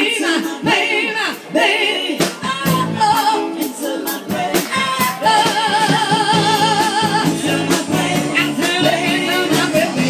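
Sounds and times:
live band music: 0.0s - 10.0s
woman singing: 0.0s - 10.0s.

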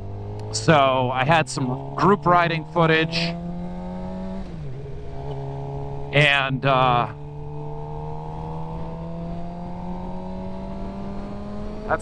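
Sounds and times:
motorbike engine accelerating: 0.0s - 12.0s.

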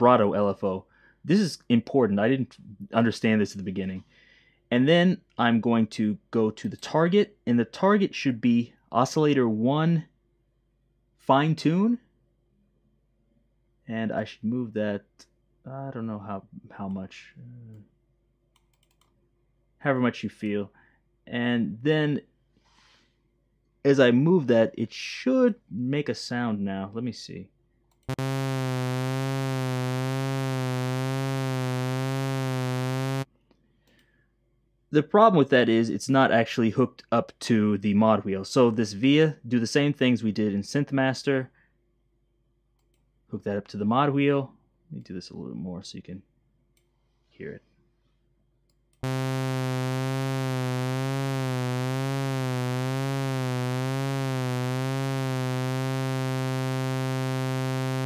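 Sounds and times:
buzzy synthesizer note with vibrato: 28.1s - 33.3s, 49.0s - 58.0s.

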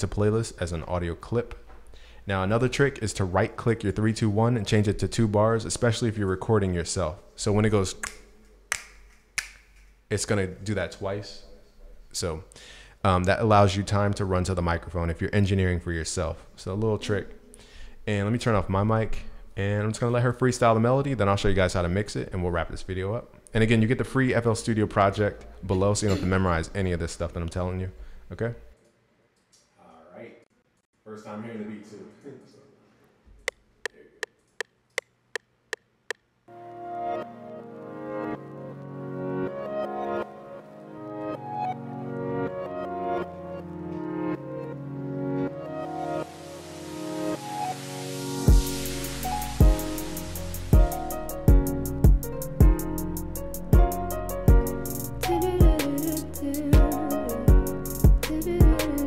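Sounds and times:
finger snaps: 8.0s - 10.0s
person laughing: 25.7s - 26.6s.

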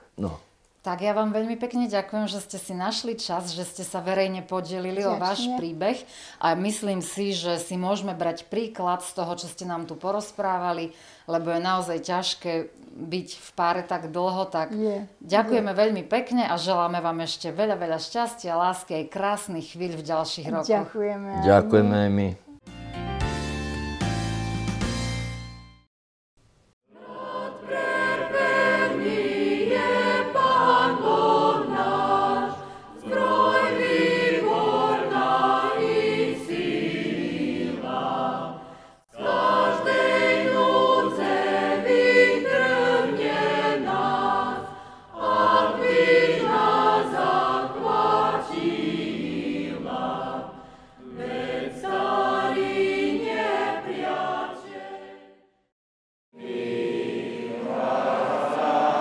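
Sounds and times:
choir singing: 4.0s - 6.0s, 21.4s - 22.0s, 26.9s - 55.5s, 56.4s - 59.0s.

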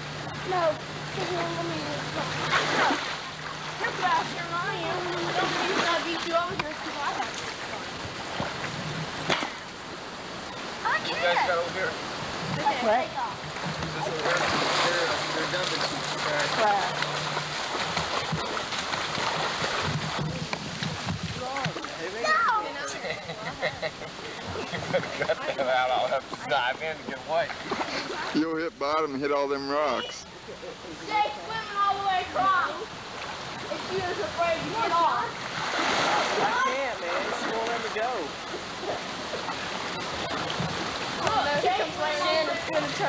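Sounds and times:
people talking and calling out: 0.0s - 8.3s, 9.0s - 43.0s
creek water flowing: 0.0s - 43.0s.

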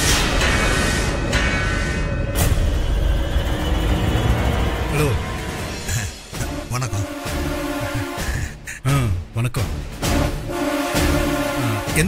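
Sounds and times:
tense drama score: 0.0s - 12.0s.

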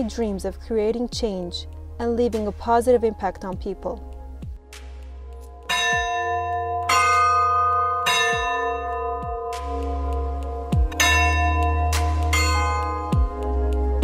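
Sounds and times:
steady low bass: 0.0s - 14.0s
bell tones ringing: 5.7s - 13.2s.

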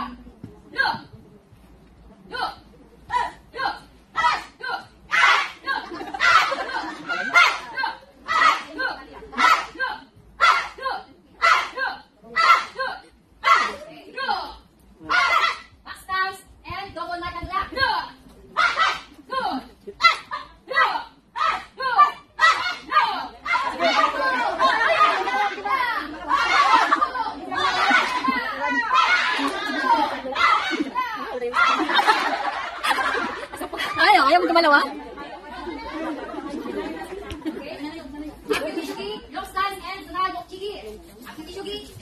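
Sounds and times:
shouted calls: 15.1s - 15.7s, 18.6s - 19.1s, 20.0s - 30.9s.

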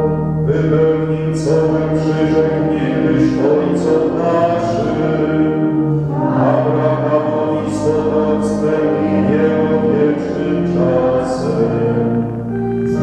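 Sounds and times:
group singing a hymn: 0.0s - 13.0s.

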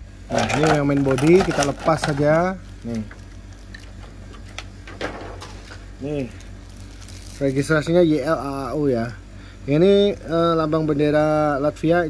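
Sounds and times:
steady low hum: 0.0s - 12.0s
plastic packaging crackling: 0.3s - 8.3s.

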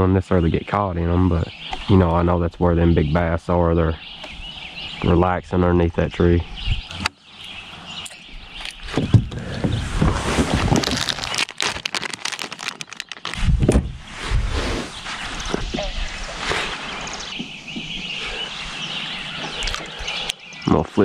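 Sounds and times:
dull thumps: 8.9s - 12.8s
fishing tackle clicks and rustling: 10.1s - 13.4s, 19.5s - 19.9s.

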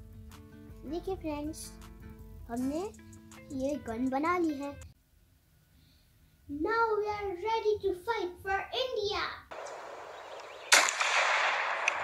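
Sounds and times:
child making gunshot sound with mouth: 10.7s - 12.0s.

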